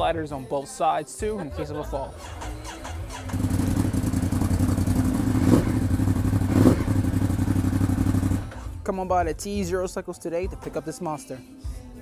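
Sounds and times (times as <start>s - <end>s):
motorcycle engine idling: 2.2s - 8.6s
motorcycle engine starting: 2.2s - 8.8s.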